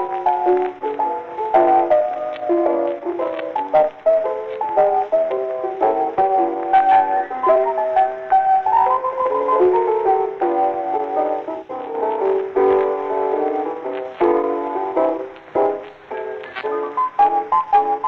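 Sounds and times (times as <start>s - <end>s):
old blues record music: 0.0s - 18.0s.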